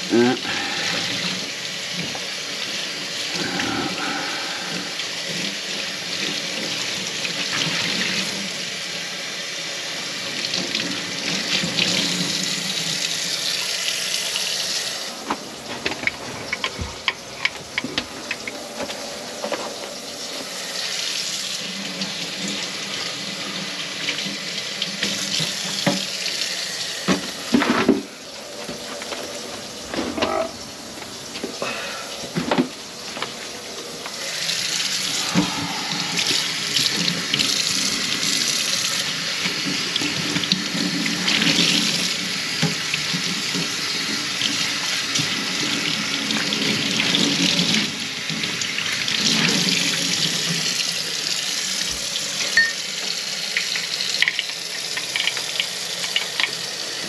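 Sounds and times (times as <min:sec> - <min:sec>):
tap water running into sink: 0:00.0 - 0:57.0.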